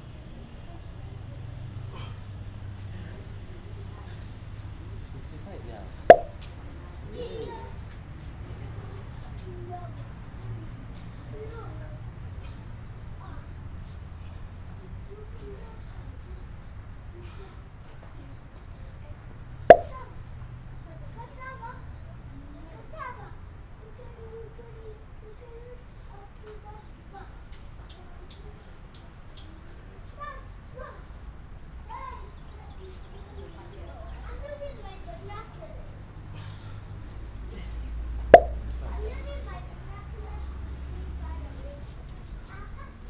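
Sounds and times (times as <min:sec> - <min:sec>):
faint voices chattering: 0:00.0 - 0:43.0
sharp loud click: 0:06.1 - 0:06.4, 0:19.7 - 0:20.0, 0:38.4 - 0:38.6
palms slapping on exercise mat: 0:06.1 - 0:06.5, 0:19.7 - 0:20.0, 0:38.4 - 0:38.7.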